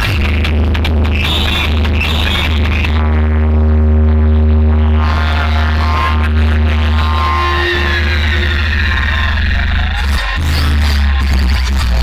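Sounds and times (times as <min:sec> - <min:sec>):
loud electronic dance music: 0:00.0 - 0:12.0.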